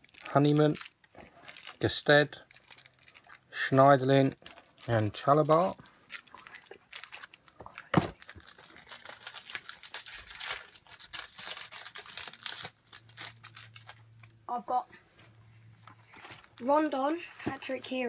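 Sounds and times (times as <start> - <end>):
foil packet tearing and crinkling: 0.0 - 3.6, 4.2 - 14.3.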